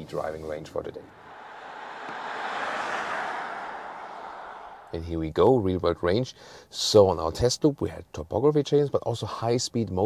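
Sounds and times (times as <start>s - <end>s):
car tyre and road noise: 1.1s - 5.1s.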